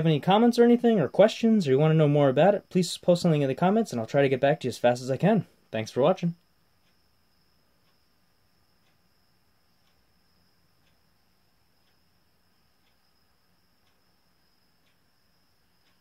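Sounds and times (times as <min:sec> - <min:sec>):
faint high whine: 0:00.0 - 0:16.0
faint tick: 0:06.4 - 0:16.0.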